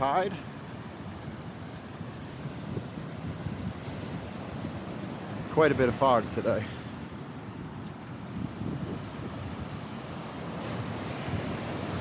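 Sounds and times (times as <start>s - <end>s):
ocean surf breaking: 0.0s - 12.0s
wind buffeting microphone: 0.0s - 12.0s.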